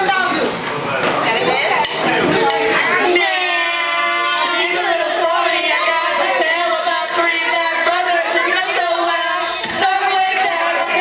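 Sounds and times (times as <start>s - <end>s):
bar crowd chatter: 0.0s - 11.0s
woman singing into a microphone: 3.0s - 11.0s.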